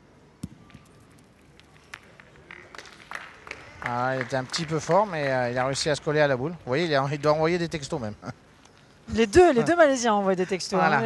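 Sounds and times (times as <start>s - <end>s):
faint indoor ambience: 0.0s - 11.0s.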